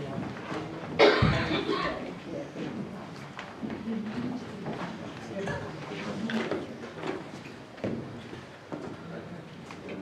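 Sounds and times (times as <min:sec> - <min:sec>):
faint voices in a hall: 0:00.0 - 0:10.0.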